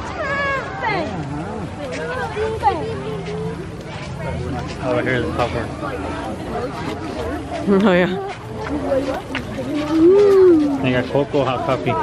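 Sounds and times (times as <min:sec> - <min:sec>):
overlapping voices chatter: 0:00.0 - 0:12.0.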